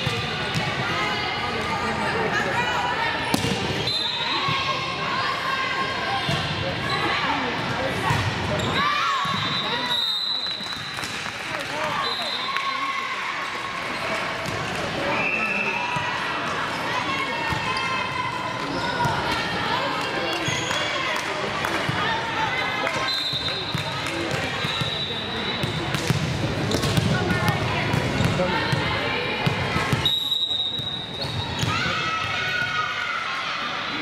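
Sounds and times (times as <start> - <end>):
people chattering and calling out: 0.0 - 34.0
high whistle blasts: 9.3 - 10.7, 30.0 - 31.3
balls bouncing on hardwood court: 25.6 - 30.0.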